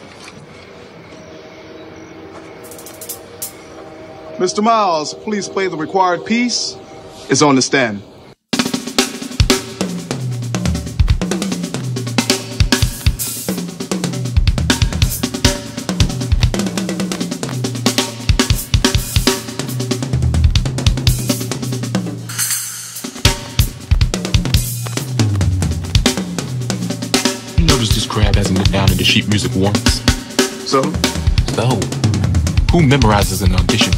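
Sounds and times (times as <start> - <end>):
drum kit solo: 8.5 - 33.9
cymbal crashes: 22.2 - 23.9.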